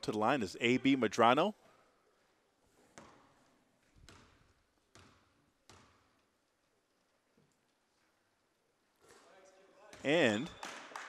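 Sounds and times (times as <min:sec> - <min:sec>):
basketball bouncing on gym floor: 0:02.9 - 0:06.4.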